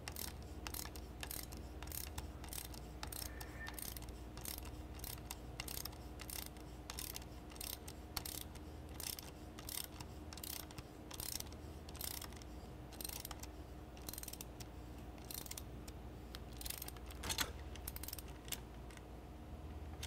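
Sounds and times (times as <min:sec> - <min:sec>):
ratchet wrench clicking: 0:00.0 - 0:18.6.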